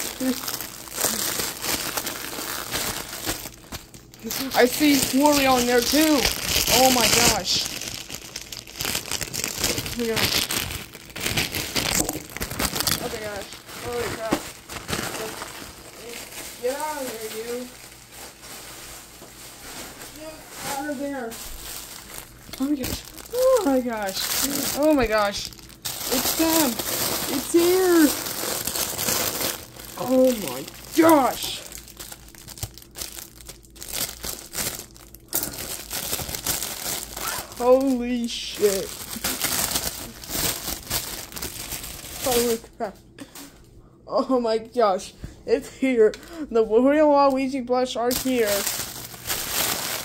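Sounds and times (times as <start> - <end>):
plastic bag crinkling: 0.0 - 43.7, 47.1 - 50.0.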